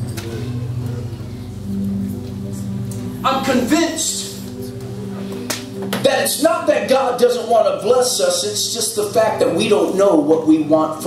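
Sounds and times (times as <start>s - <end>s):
keyboard organ-style chords: 0.0s - 11.0s.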